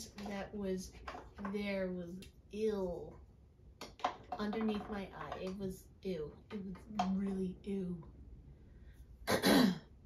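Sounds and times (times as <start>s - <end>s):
woman clearing her throat: 9.3s - 9.9s.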